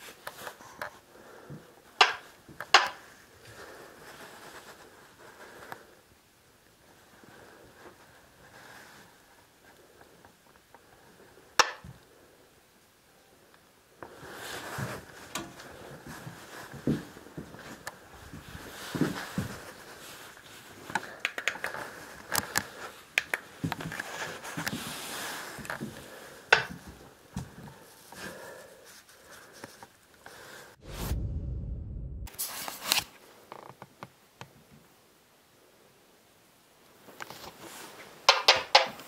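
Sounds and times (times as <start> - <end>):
low rumble: 30.8 - 32.4.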